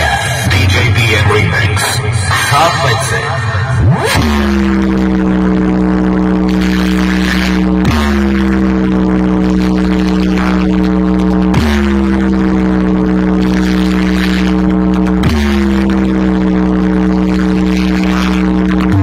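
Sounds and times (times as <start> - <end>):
deep sub-bass rumble: 0.0 - 19.0
droning bass tone with pitch drop: 0.0 - 19.0.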